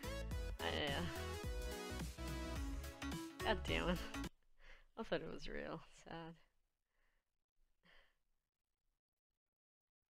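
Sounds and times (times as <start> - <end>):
woman breathing: 0.0 - 0.3, 4.0 - 5.0, 6.9 - 8.2.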